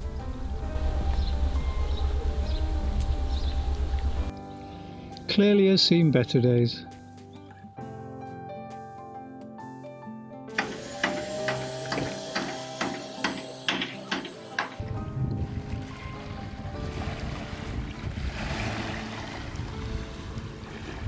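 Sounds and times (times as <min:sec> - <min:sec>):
wind buffeting microphone: 0:00.0 - 0:04.3, 0:14.8 - 0:21.0
percussive background music: 0:10.5 - 0:21.0
waves washing over pebbles: 0:15.8 - 0:21.0.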